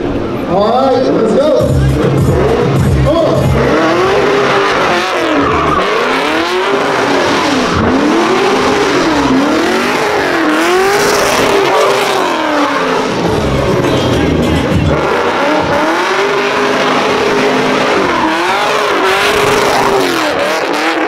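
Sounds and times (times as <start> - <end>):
tires squealing: 0.9 - 21.0
car engine revving: 1.6 - 21.0.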